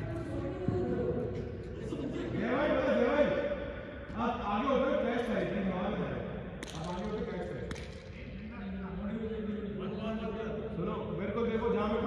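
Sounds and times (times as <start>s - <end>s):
men talking: 1.8s - 12.0s.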